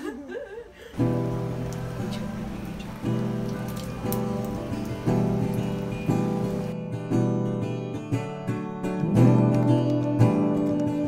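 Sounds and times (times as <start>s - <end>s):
bread sizzling in a frying pan: 1.0s - 6.8s
acoustic guitar music: 1.0s - 11.0s.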